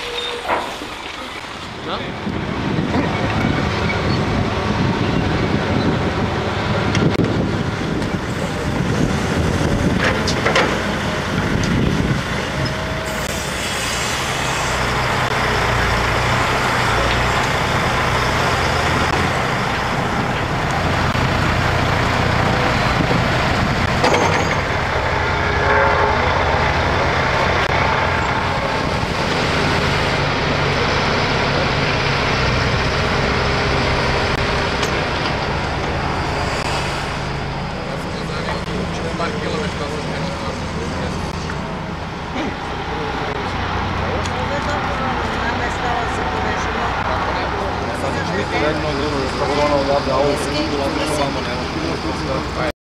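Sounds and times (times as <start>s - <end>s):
diesel engines droning: 0.0s - 52.7s.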